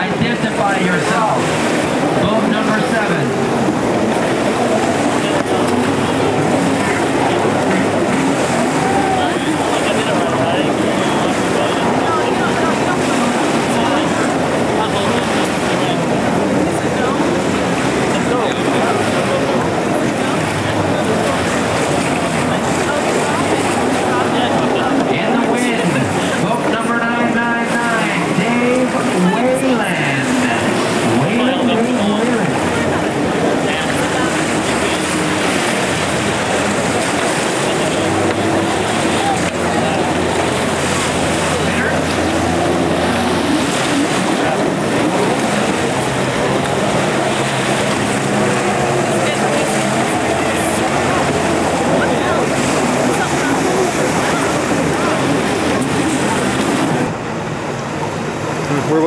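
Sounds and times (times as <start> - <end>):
background voices: 0.0 - 59.0
jet ski engines racing: 0.0 - 59.0.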